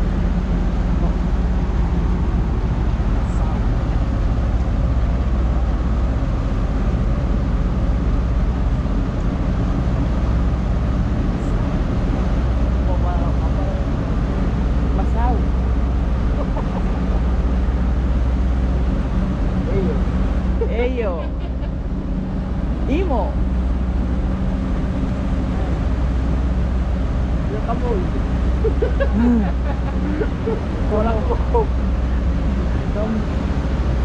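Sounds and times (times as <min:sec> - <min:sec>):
ship engines rumbling: 0:00.0 - 0:34.0.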